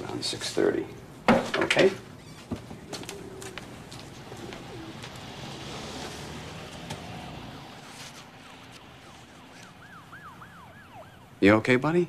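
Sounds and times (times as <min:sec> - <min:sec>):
soft street noise: 0:00.0 - 0:12.0
far-off siren yelping: 0:02.8 - 0:11.6.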